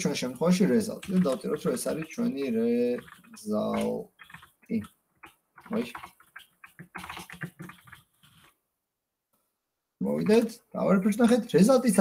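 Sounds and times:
computer keyboard typing: 0.0s - 8.5s.

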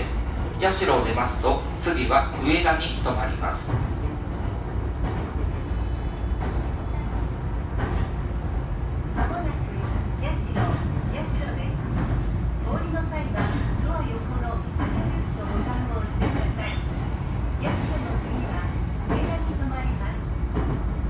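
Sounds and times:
train wheels rumbling: 0.0s - 21.0s.

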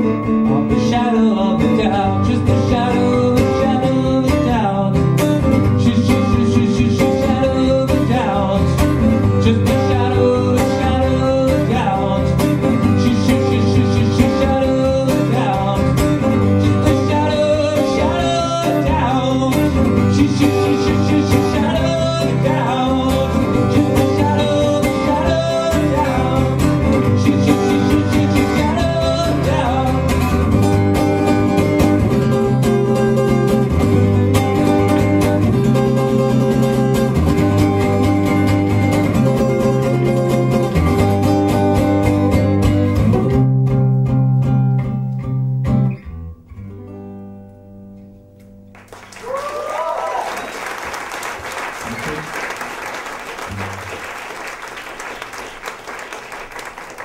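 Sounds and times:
live band playing guitar-led music: 0.0s - 49.0s
audience applauding and cheering: 48.7s - 57.0s.

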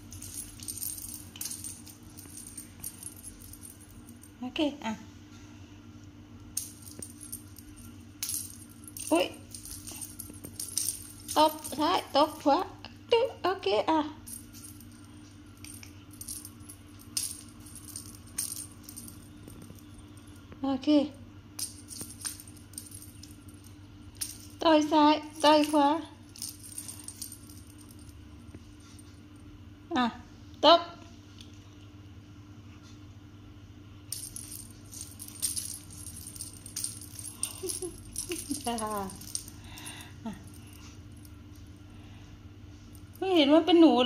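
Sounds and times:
small bell jingling: 0.0s - 4.3s, 6.6s - 12.6s, 14.2s - 20.4s, 21.6s - 24.6s, 25.2s - 28.2s, 34.1s - 40.9s
faint low hum: 0.0s - 44.0s.

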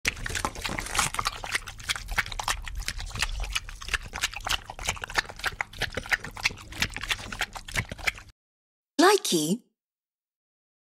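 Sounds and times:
dog licking wet slurps: 0.0s - 8.3s.

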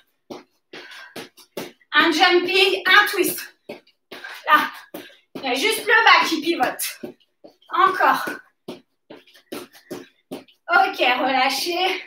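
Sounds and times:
feet landing: 0.0s - 2.3s, 2.9s - 10.7s.

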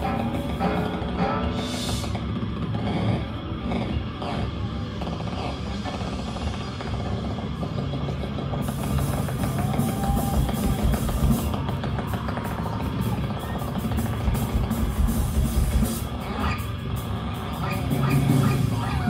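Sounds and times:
rock band playing live: 0.0s - 2.1s, 8.6s - 19.0s
loud drum kit: 0.0s - 3.2s, 8.4s - 19.0s.

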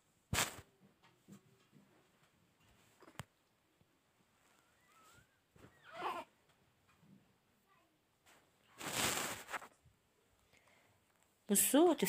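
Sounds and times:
rustling scrape on metal tray: 8.8s - 9.7s.

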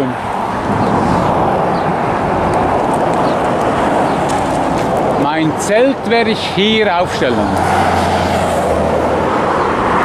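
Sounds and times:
traffic roar: 0.0s - 10.0s.

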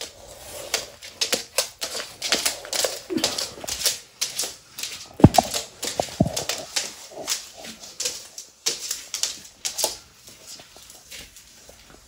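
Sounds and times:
claws clicking on wooden floor: 0.0s - 12.0s
heavy thumps: 5.2s - 6.6s.

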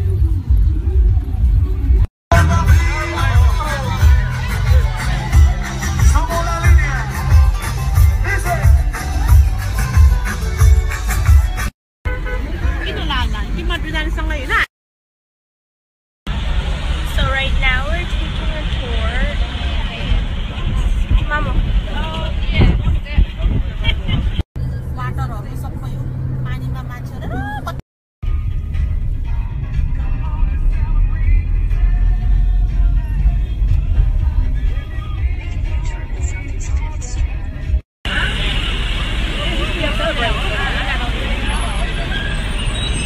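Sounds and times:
music: 0.0s - 11.7s, 28.2s - 37.8s
moving vehicle: 0.0s - 14.7s, 16.3s - 43.0s
people's voices: 0.1s - 10.4s, 17.1s - 27.8s, 34.4s - 42.9s
wind rumble on microphone: 18.0s - 27.8s.

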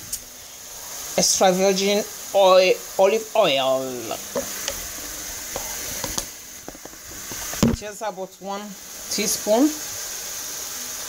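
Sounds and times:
burgers sizzling on grill: 0.0s - 11.0s
bottles clicking and tapping: 4.3s - 4.8s, 5.5s - 7.8s.

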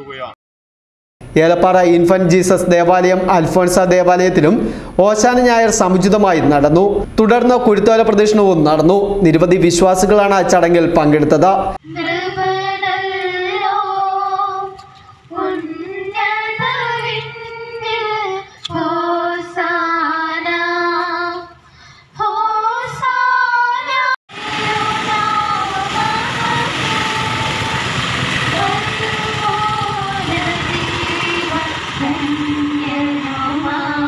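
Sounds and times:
women and children singing a hymn: 11.8s - 21.6s, 22.2s - 34.0s
steady rushing background noise: 24.3s - 34.0s.

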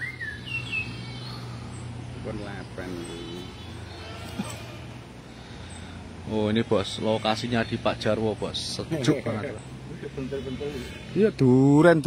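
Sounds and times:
bird whistling call: 0.0s - 1.5s
steady low hum: 0.0s - 12.0s.

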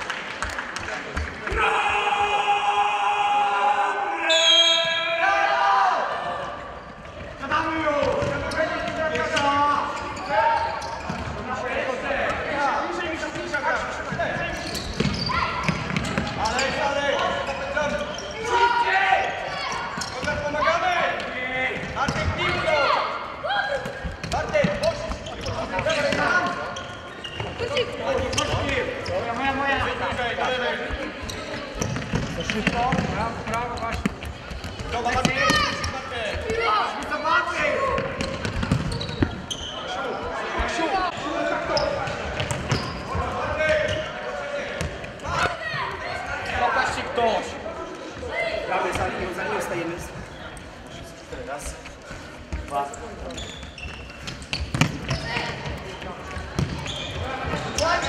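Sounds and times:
ball kicked and bouncing: 54.5s - 55.5s.

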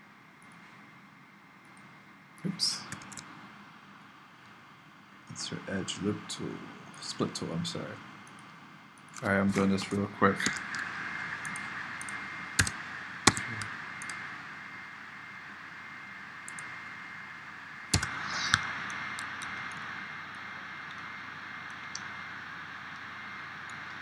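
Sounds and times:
steady hiss with faint high tone: 0.0s - 24.0s
computer mouse and keyboard clicks: 2.8s - 3.3s, 8.2s - 14.2s, 16.5s - 16.7s, 17.9s - 19.9s.

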